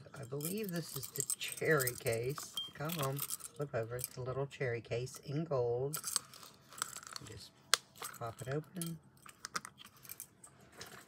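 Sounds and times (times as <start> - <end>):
small plastic and metal keychains clattering: 0.1 - 4.2, 5.9 - 11.0.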